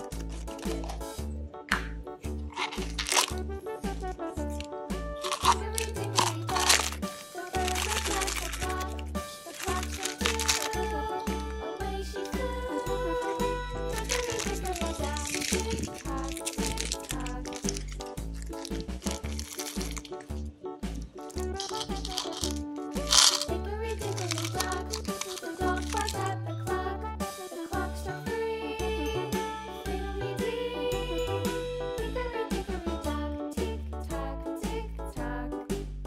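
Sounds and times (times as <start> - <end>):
candies rattling into plastic capsule: 0.0 - 1.1, 2.5 - 3.4, 4.5 - 11.0, 13.9 - 20.4, 21.1 - 26.3
plastic sweet wrapper crinkling: 0.0 - 1.1, 2.5 - 3.4, 4.5 - 10.9, 13.9 - 26.3
children's music with bass line: 0.0 - 36.0.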